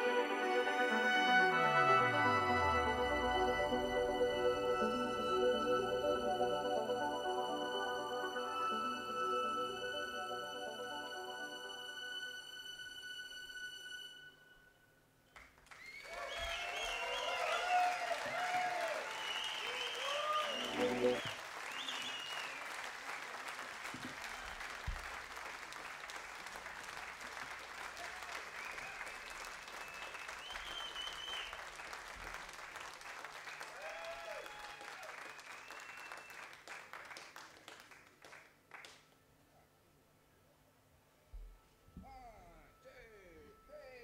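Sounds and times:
audience applauding: 0:15.3 - 0:39.1
whistles: 0:15.7 - 0:17.6, 0:19.0 - 0:22.8, 0:28.5 - 0:31.6, 0:34.2 - 0:36.6
shouted cheers: 0:15.8 - 0:21.4, 0:33.7 - 0:36.2.

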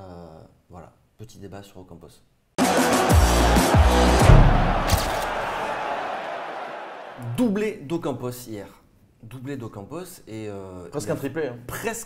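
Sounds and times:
deep bass hits: 0:02.6 - 0:05.7
sharp hit: 0:02.6 - 0:05.7.

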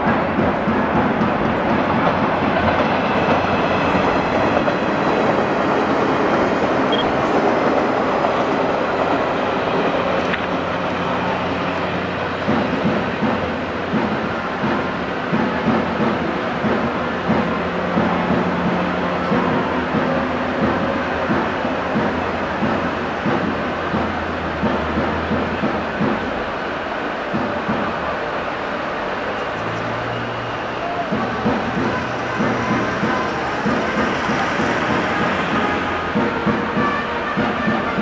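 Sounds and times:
electric train passing: 0:00.0 - 0:38.0.

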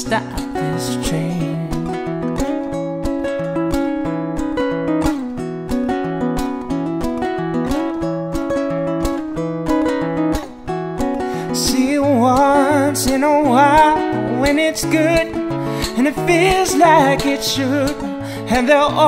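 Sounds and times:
fingerpicked classical guitar: 0:00.0 - 0:19.0.

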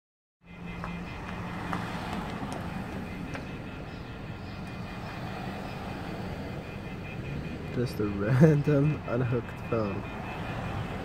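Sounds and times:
vehicle engine and traffic rumble: 0:00.4 - 0:11.0.

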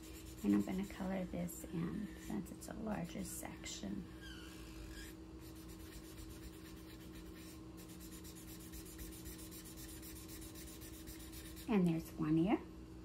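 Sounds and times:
marker squeaking on paper: 0:04.2 - 0:10.0.

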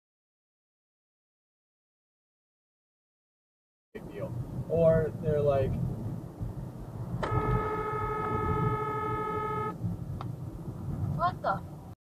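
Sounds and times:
moving car rumble: 0:04.0 - 0:12.0
car horn blast: 0:07.2 - 0:09.8.

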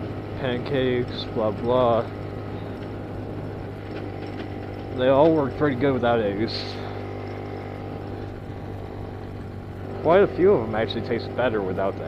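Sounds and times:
motorcycle engine drone: 0:00.0 - 0:12.0
road and wind noise: 0:00.0 - 0:12.0.

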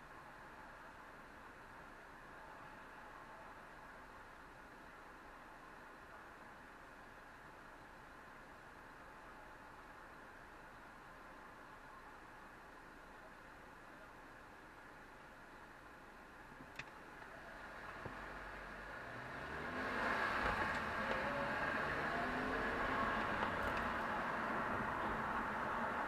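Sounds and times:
car engine and tyre noise: 0:00.0 - 0:26.0.

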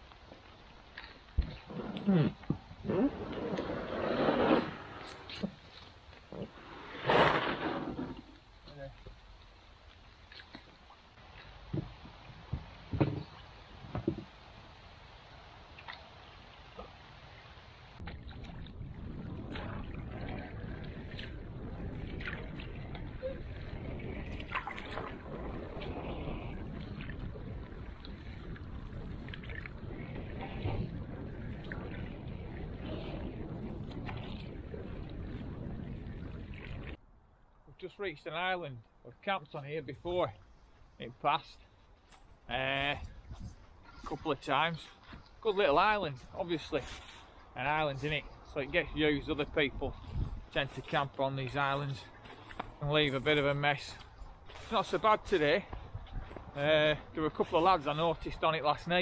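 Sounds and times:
wind: 0:00.0 - 0:59.0
gear knocking and scraping in canoe: 0:00.1 - 0:14.4, 0:18.0 - 0:37.0
paddle strokes splashing: 0:15.7 - 0:37.0
water washing around canoe: 0:18.0 - 0:37.0.

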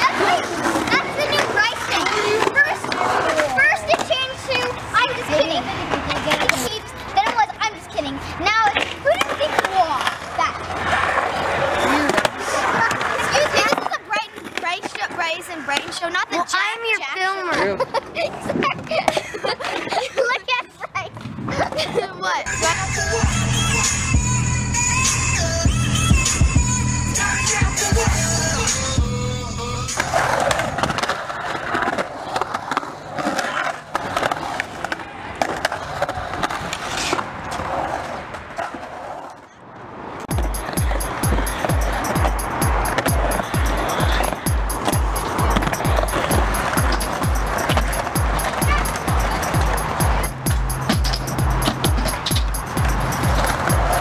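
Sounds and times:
skateboard clicks and knocks: 0:00.0 - 0:16.6, 0:17.5 - 0:21.9, 0:29.8 - 0:54.0
children talking: 0:00.0 - 0:24.1, 0:40.3 - 0:54.0
skateboard wheels rolling on concrete: 0:00.0 - 0:54.0
music: 0:22.5 - 0:30.2, 0:40.3 - 0:54.0.

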